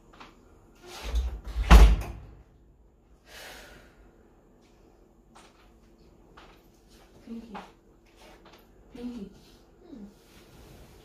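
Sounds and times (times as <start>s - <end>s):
wooden door banging shut: 1.5s - 2.3s.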